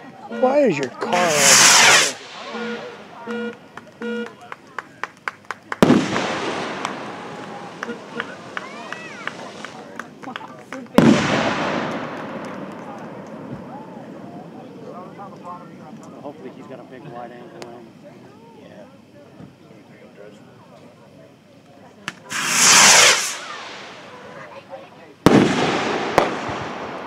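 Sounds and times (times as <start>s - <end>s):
short beeps: 0.2s - 4.4s
fireworks crackling pops: 0.8s - 14.0s, 22.0s - 24.6s, 25.2s - 27.0s
fireworks bang with rolling echo: 1.2s - 3.2s, 5.7s - 14.2s, 22.3s - 24.6s, 25.2s - 27.0s.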